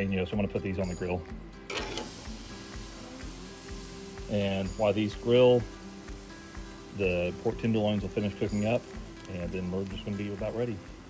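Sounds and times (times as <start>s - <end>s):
soft background music: 0.0s - 11.0s
vegetables sizzling on a grill: 0.8s - 11.0s.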